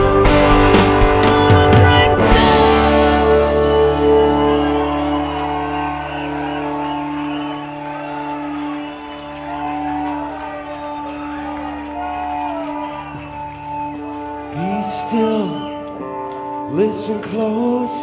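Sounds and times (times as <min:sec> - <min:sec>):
rock band chord ringing: 0:00.0 - 0:12.9
crowd cheering and whooping: 0:01.5 - 0:16.7.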